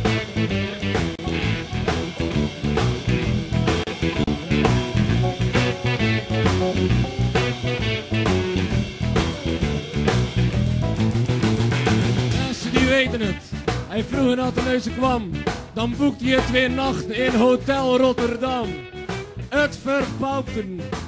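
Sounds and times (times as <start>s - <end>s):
band playing: 0.0s - 21.0s
drums steady beat: 0.0s - 21.0s.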